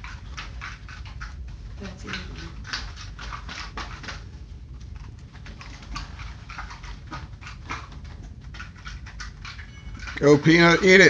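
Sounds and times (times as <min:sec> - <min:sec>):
dog crunching ice: 0:00.0 - 0:11.0.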